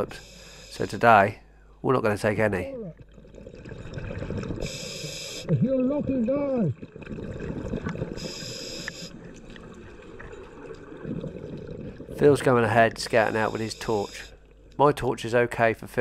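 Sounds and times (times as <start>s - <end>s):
regulator inhalation hiss: 0.0s - 1.0s, 4.6s - 5.5s, 8.2s - 9.2s, 13.2s - 14.4s
exhaled bubbles rumbling: 2.7s - 4.8s, 5.4s - 8.4s, 9.2s - 13.3s.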